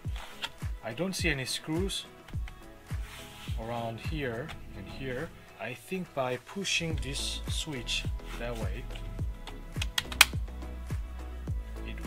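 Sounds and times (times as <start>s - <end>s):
background music with beat: 0.0s - 12.0s
plastic latch clicks: 9.5s - 10.4s.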